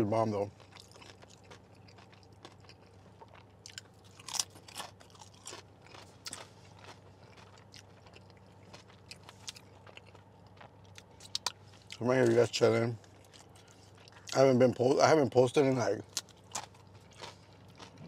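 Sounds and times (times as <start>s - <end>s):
chewing crunchy chips: 0.0s - 18.0s.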